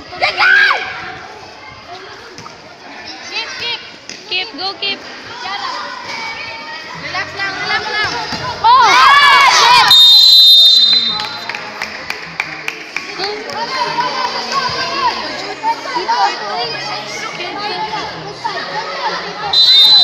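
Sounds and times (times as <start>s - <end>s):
young voices chattering and calling: 0.0s - 9.9s, 13.1s - 20.0s
children shouting excitedly: 0.1s - 1.1s, 8.6s - 9.9s
whistle blast: 9.9s - 11.4s, 19.5s - 20.0s.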